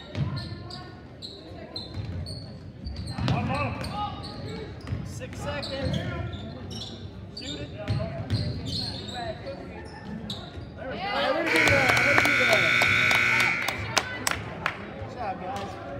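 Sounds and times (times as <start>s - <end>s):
crowd voices: 9.5s - 15.9s
scoreboard horn blast: 11.5s - 13.9s.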